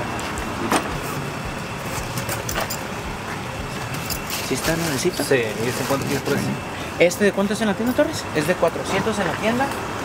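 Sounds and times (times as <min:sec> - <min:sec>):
steady low rumble: 0:00.0 - 0:08.1
packaging rustling: 0:04.2 - 0:06.4.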